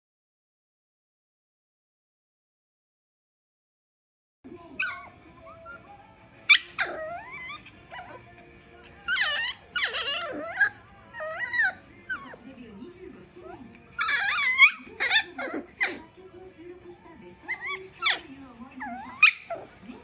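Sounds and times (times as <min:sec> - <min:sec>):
puppy whining and yipping: 0:04.8 - 0:12.4, 0:13.4 - 0:16.1, 0:17.4 - 0:20.0.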